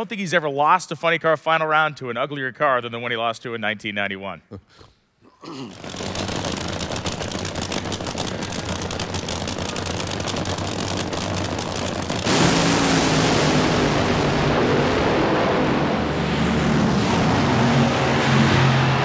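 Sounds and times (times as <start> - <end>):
drag racing engines crackling: 5.7 - 19.0
engines launching at full throttle: 5.7 - 19.0.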